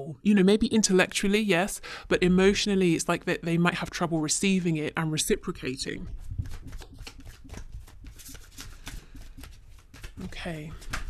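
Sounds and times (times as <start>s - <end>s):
cards being shuffled: 6.0s - 11.0s.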